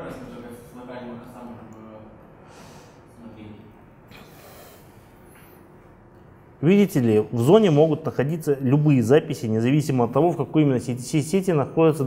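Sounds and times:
breath through the nose: 4.1s - 5.3s.

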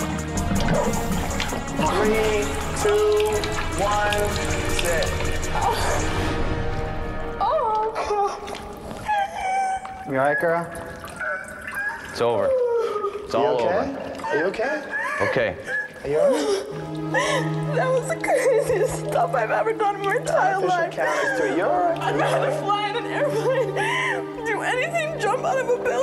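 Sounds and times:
splashing noise: 0.0s - 6.8s
background music: 0.0s - 26.0s
woman wailing in distress: 7.5s - 19.5s, 20.2s - 24.9s.

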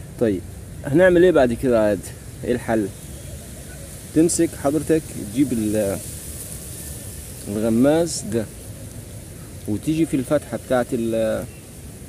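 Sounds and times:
outdoor background hiss: 0.0s - 12.0s.

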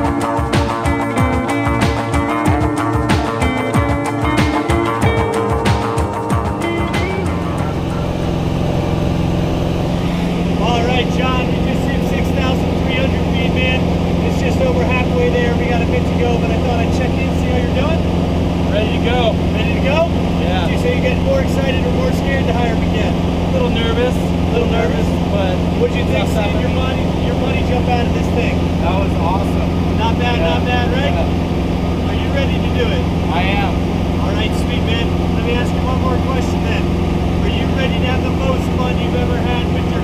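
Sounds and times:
indistinct voices talking: 0.0s - 40.0s
light aircraft engine drone: 1.4s - 40.0s.

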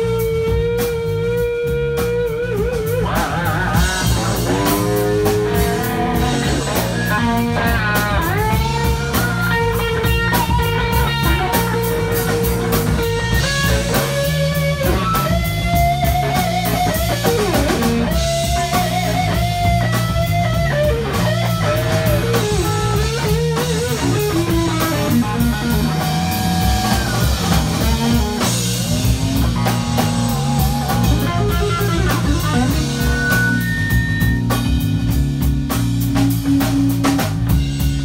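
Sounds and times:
bass guitar: 0.0s - 38.0s
drum kit: 0.0s - 38.0s
electric guitar lead line: 0.0s - 38.0s.

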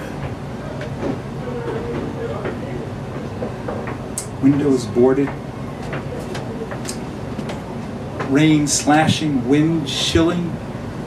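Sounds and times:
voices murmuring: 0.0s - 10.4s
low room rumble: 0.0s - 11.0s.

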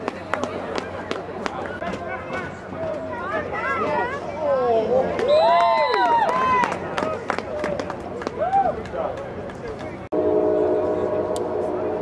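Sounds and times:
train horn chord: 10.1s - 12.0s.

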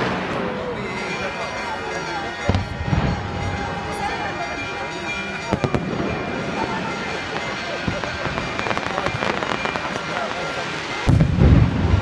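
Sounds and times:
fireworks cracking: 0.0s - 1.3s, 2.4s - 12.0s
fireworks banging: 0.0s - 12.0s.

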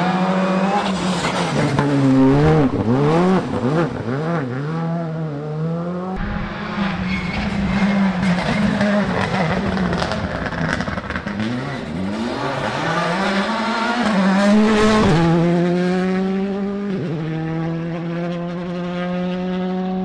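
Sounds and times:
rally car engine at high pitch: 0.0s - 20.0s
rally car engine with gear changes: 0.0s - 20.0s.

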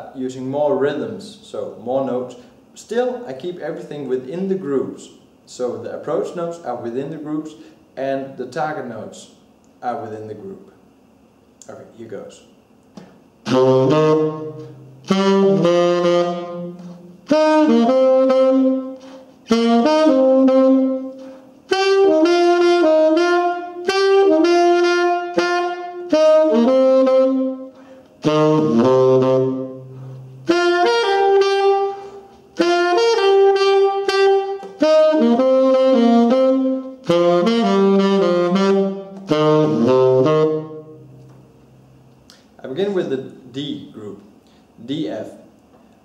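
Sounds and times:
saxophone playing blues melody: 13.4s - 41.3s.

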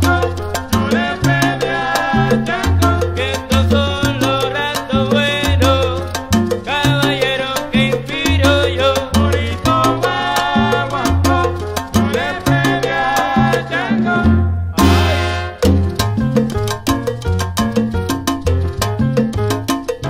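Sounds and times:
bass line: 0.0s - 20.0s
salsa band instrumental: 0.0s - 20.0s
sharp percussion strokes: 14.8s - 16.6s.

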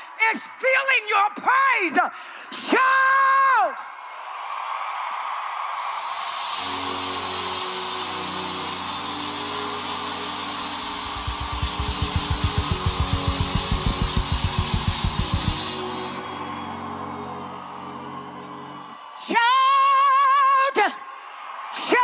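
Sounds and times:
crowd noise: 6.7s - 19.2s
live worship band music: 6.8s - 17.0s
fast kick-drum beats: 11.0s - 15.8s
sustained keyboard and bass notes: 11.0s - 15.9s.

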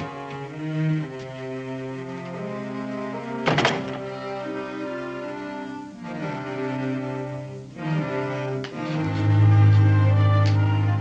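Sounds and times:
sustained background music: 0.0s - 11.0s
wooden door thudding shut: 3.4s - 4.0s.

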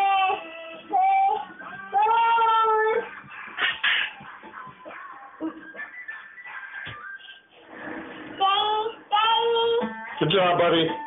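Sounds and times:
high singing voice: 8.3s - 10.3s.

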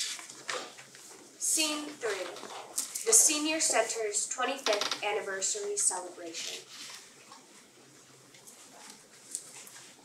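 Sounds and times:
faint rustling of paper: 0.0s - 3.8s, 6.3s - 10.0s.

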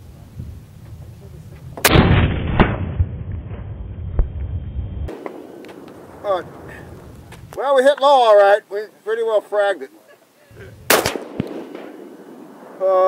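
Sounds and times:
rifle shot with rolling echo: 1.8s - 4.3s, 5.1s - 7.0s, 10.8s - 13.0s
sharp crack: 1.8s - 4.5s, 5.1s - 8.1s, 10.8s - 13.0s.

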